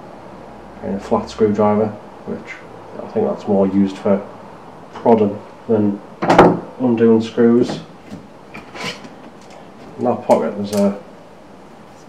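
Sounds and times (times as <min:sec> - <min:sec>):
folding rule light clicks: 0:10.3 - 0:11.0.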